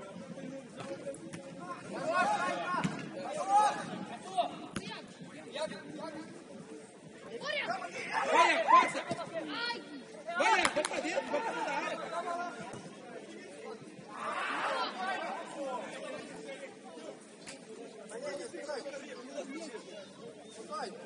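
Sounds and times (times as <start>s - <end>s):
players calling and shouting: 0.1s - 21.0s.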